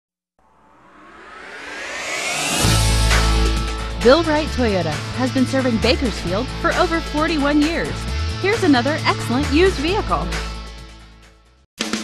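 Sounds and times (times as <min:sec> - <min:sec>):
rising whoosh: 0:00.4 - 0:04.1.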